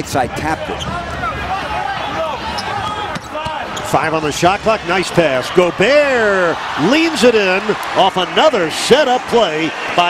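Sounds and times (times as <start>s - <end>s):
arena crowd murmur: 0.2s - 10.0s.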